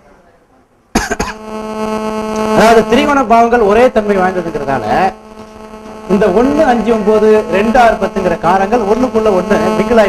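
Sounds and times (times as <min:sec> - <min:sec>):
man coughing: 0:01.0 - 0:01.4
buzzing hum: 0:01.0 - 0:10.0.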